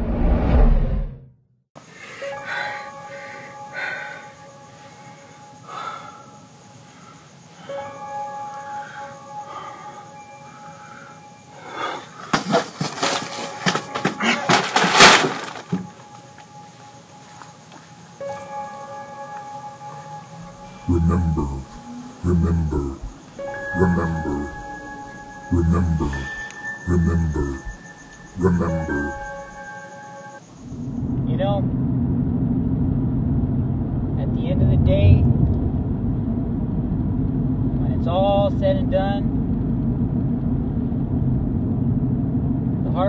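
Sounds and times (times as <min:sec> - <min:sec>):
road and engine noise in cab: 0:35.3 - 0:43.0.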